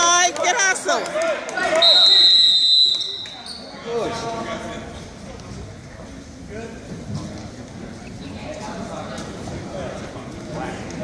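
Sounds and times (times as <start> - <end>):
voices on the court: 0.0 - 11.0
referee's whistle blast: 1.8 - 3.6
sneakers squeaking: 3.0 - 3.9.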